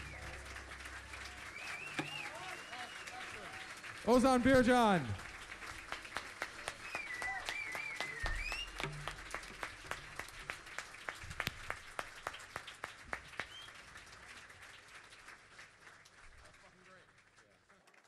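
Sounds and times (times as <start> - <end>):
crowd cheering: 0.0 - 13.9
audience applauding: 0.0 - 18.0.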